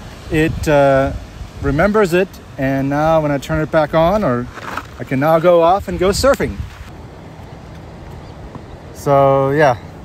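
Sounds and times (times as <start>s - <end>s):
distant ocean surf: 0.0s - 10.0s
wind: 0.0s - 10.0s.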